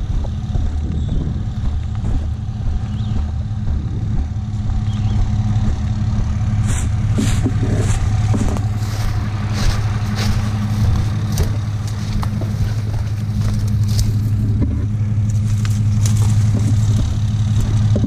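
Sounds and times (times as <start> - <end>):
truck engine idling: 0.0 - 18.0
footsteps through dry brush: 4.8 - 14.5, 15.2 - 17.9.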